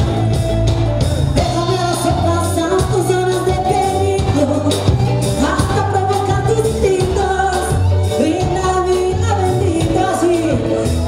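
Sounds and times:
live band playing: 0.0s - 11.0s
woman singing pop song: 1.4s - 11.0s.

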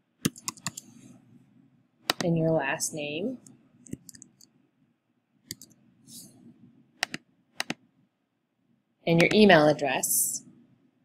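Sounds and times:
keyboard keystrokes: 0.3s - 0.8s, 2.1s - 2.3s, 7.0s - 7.8s
mouse clicks: 2.1s - 2.3s, 5.5s - 5.8s, 7.0s - 7.8s.

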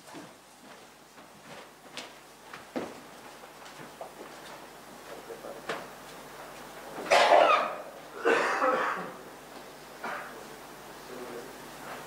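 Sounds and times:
person coughing: 8.2s - 9.2s.

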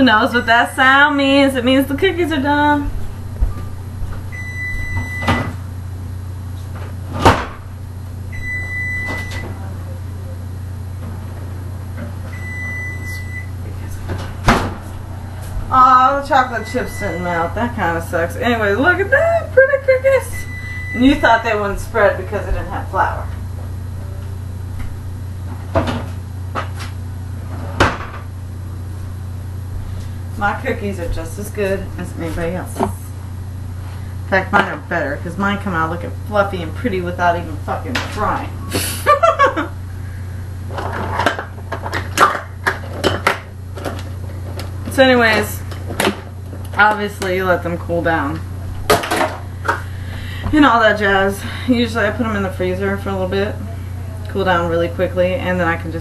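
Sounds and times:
low steady hum: 0.0s - 56.0s
oven timer beeping: 4.3s - 5.7s, 8.3s - 9.6s, 12.3s - 13.6s, 15.7s - 18.0s, 20.2s - 21.5s.

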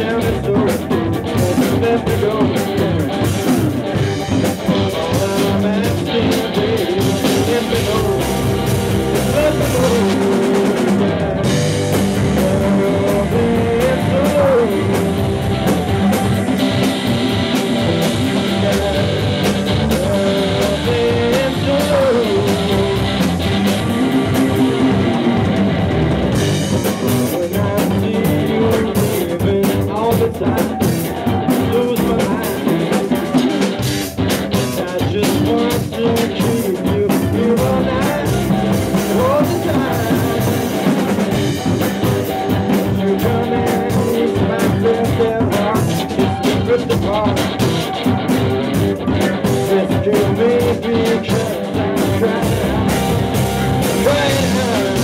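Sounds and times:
drum kit: 0.0s - 55.0s
electric bass: 0.0s - 55.0s
electric guitar: 0.0s - 55.0s
keyboard: 0.0s - 55.0s.

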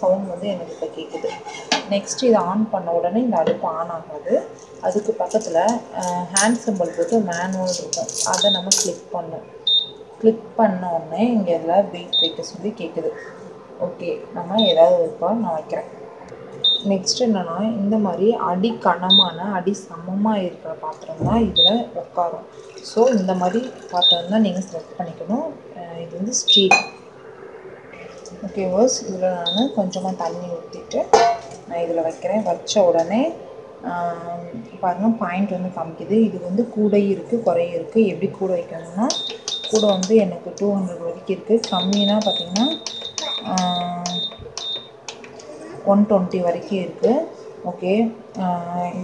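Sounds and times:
person talking: 0.0s - 9.4s, 16.9s - 26.8s, 36.0s - 44.6s
short high cooktop beeps: 39.1s - 40.1s, 41.6s - 44.9s.

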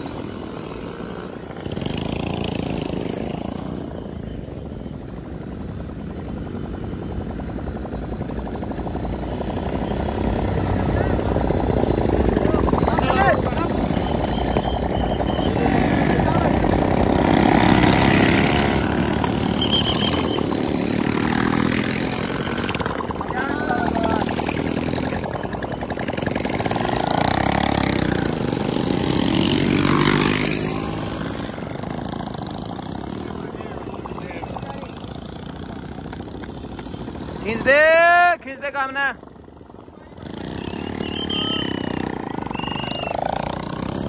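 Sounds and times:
motorcycle engines running: 0.0s - 44.0s
men shouting: 23.3s - 24.5s, 40.9s - 41.9s.

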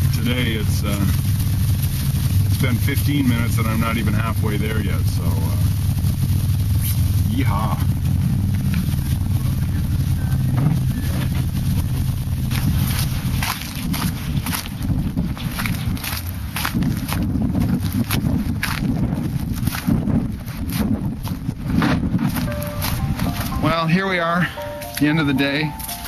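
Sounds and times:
steady low hum: 0.0s - 26.0s
wind on microphone: 4.9s - 23.6s
footsteps crunching on icy snow: 10.4s - 21.6s, 22.2s - 26.0s.

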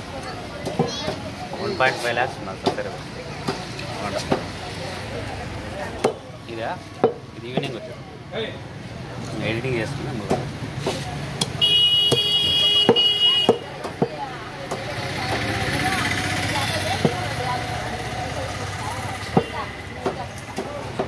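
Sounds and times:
street noise: 0.0s - 21.0s
vehicle horn: 11.6s - 13.6s.

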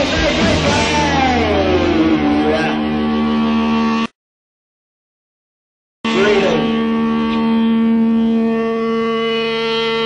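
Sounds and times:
droning note: 0.0s - 4.2s, 6.0s - 10.0s.

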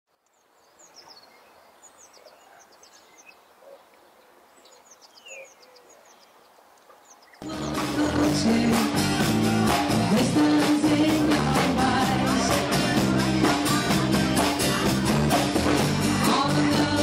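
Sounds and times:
birds chirping: 0.1s - 9.0s
live rock band music: 7.4s - 17.0s.

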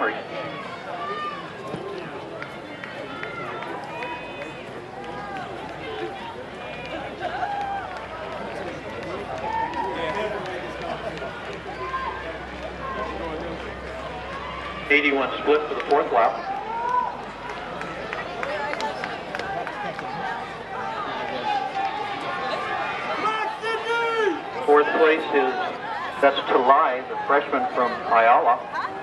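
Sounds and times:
spectators shouting: 0.0s - 29.0s.

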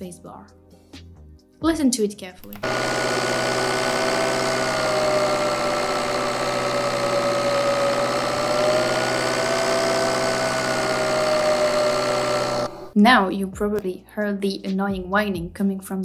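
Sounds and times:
engine running: 2.4s - 13.0s
turbo whine: 2.5s - 13.0s.

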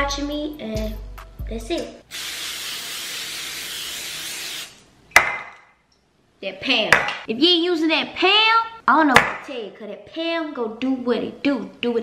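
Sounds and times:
aerosol can spraying: 2.1s - 4.8s.

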